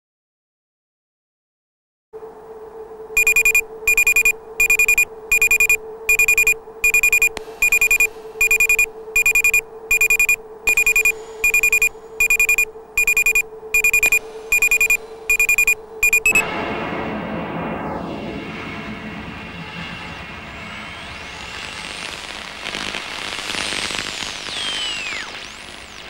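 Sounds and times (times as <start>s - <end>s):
steady low hum: 2.2s - 21.5s.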